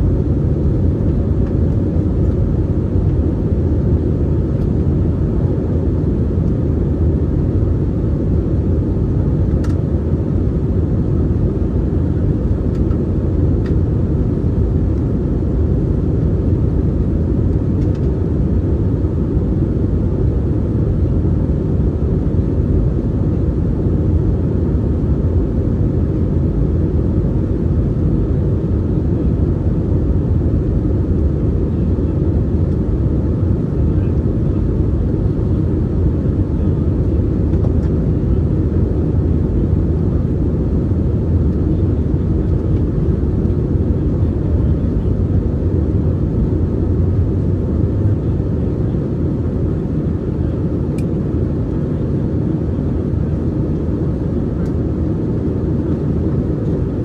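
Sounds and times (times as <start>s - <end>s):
jet engine drone in cabin: 0.0s - 57.0s.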